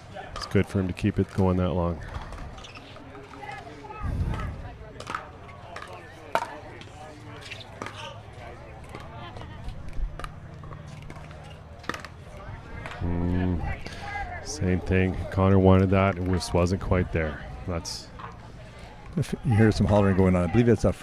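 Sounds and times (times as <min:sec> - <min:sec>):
faint voices: 0:00.0 - 0:21.0.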